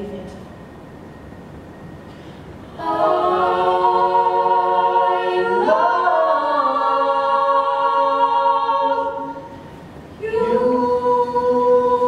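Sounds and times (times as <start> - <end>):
group singing a cappella: 2.6 - 12.0.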